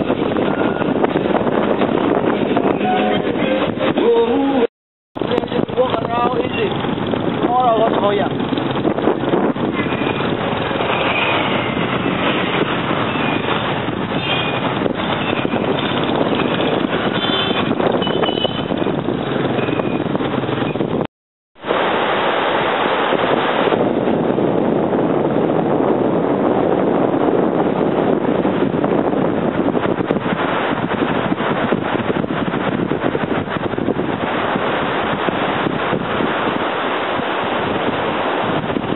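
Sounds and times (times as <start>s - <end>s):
beach surf: 0.0s - 8.8s, 21.6s - 38.9s
motorbike street traffic: 0.0s - 21.1s
wind on microphone: 0.0s - 38.9s
short high beeps: 2.7s - 4.0s.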